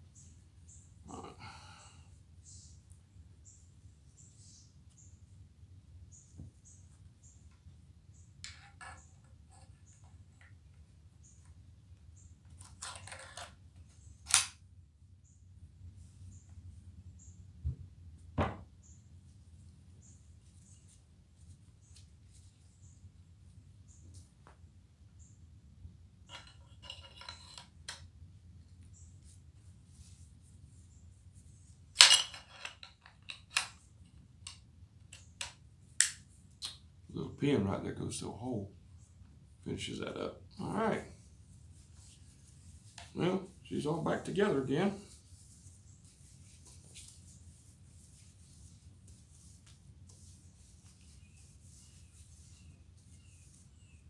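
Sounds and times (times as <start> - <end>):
rag rubbing on a gun: 41.7 - 54.0.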